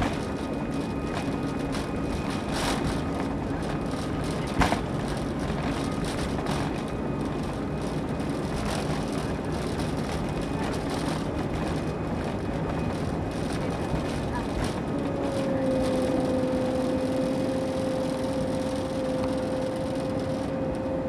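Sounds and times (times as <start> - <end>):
jet engines at takeoff power: 0.0 - 21.0
steady hum: 0.0 - 21.0.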